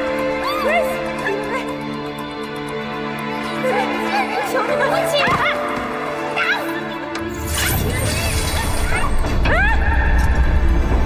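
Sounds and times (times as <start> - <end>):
background music with held notes: 0.0 - 11.0
woman shrieking and yelling: 8.2 - 10.3.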